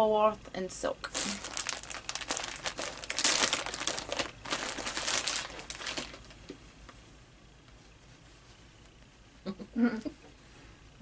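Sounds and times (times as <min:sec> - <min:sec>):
plastic bag crinkling: 0:01.0 - 0:06.5.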